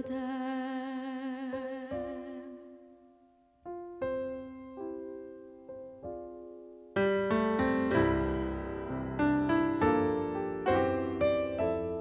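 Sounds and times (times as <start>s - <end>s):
woman singing a hymn: 0.0s - 2.9s
soft piano accompaniment: 0.0s - 12.0s.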